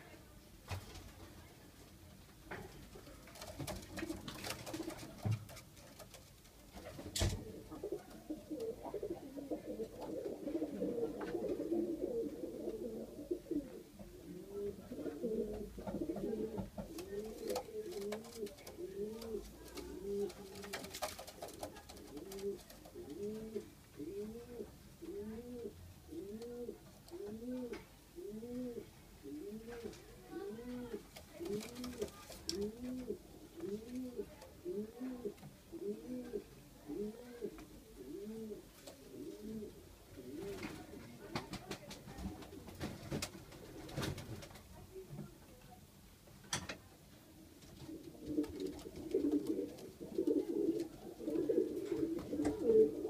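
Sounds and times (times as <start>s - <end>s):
pigeons cooing: 7.5s - 40.7s, 47.8s - 53.0s.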